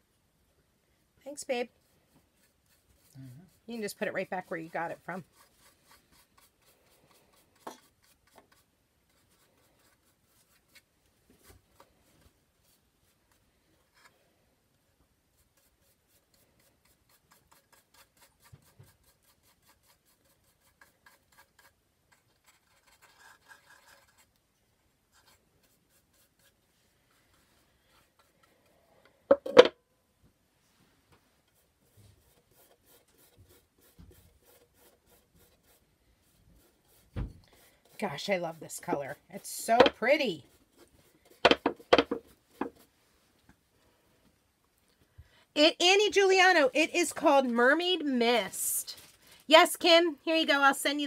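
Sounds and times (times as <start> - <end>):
paintbrush strokes on wood: 1.3 - 14.2, 15.2 - 24.4, 25.1 - 28.8, 30.6 - 44.0.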